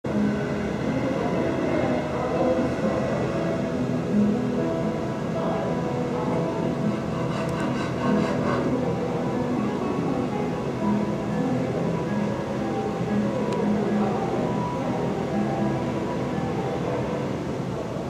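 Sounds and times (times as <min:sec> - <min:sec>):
quiet music of held notes: 0:00.1 - 0:18.0.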